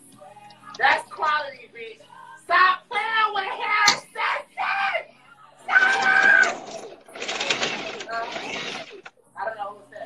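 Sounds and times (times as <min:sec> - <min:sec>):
people shouting: 0:03.5 - 0:07.5.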